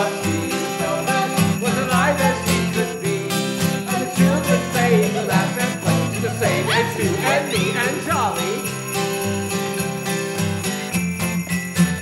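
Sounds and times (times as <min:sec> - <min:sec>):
voices singing: 0:00.0 - 0:09.4
sleigh bells shaken: 0:00.0 - 0:12.0
strummed acoustic guitar: 0:00.0 - 0:12.0.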